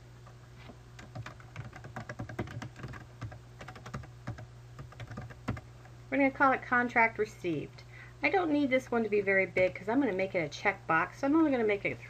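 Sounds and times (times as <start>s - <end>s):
steady low hum: 0.0s - 12.0s
computer keyboard typing: 1.0s - 5.7s.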